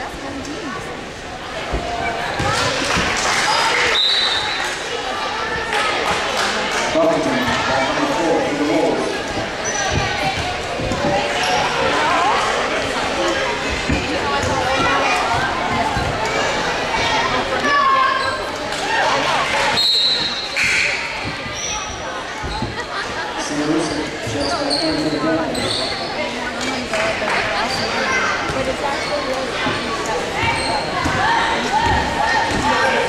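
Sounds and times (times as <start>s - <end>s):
spectators' voices: 0.0s - 33.0s.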